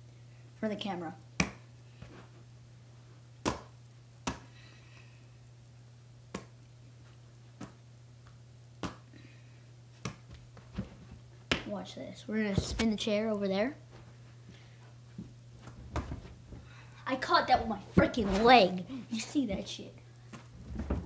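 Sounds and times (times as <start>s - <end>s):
steady low hum: 0.0s - 21.0s
football slapping into hands: 1.4s - 1.6s, 3.4s - 4.5s, 6.3s - 6.6s, 8.8s - 9.1s, 10.0s - 10.9s, 11.5s - 11.7s.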